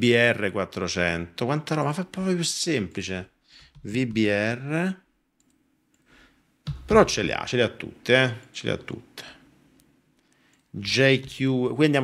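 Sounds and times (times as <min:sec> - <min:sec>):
man talking: 0:00.0 - 0:05.1, 0:06.7 - 0:09.5, 0:10.7 - 0:12.0.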